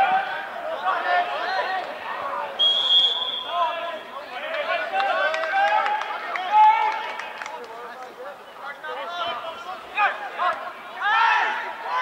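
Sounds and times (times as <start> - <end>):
high steady whistle: 2.6 - 3.6
people shouting: 9.9 - 12.0.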